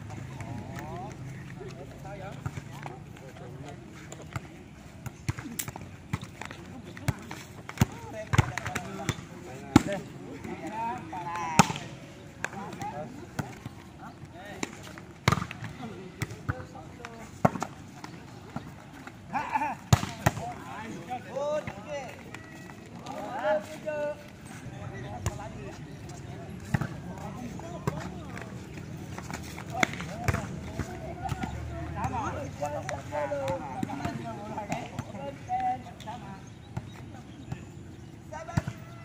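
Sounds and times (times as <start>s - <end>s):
volleyball smacks and bounces: 14.6s - 16.6s, 19.9s - 20.6s, 29.2s - 30.6s.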